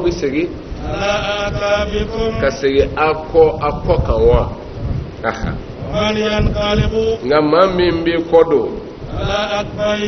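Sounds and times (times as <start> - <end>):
man chanting recitation: 0.0 - 4.7, 5.3 - 10.0.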